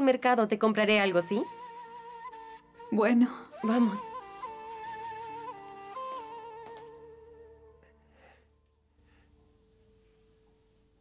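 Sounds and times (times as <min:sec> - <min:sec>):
wavering background music: 0:00.0 - 0:11.0.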